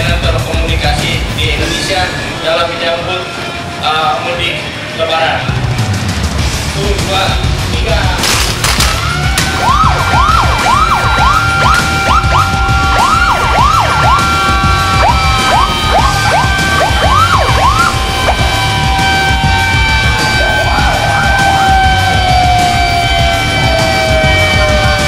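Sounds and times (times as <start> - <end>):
loud background music: 0.0 - 25.0
sirens yelping: 8.8 - 25.0.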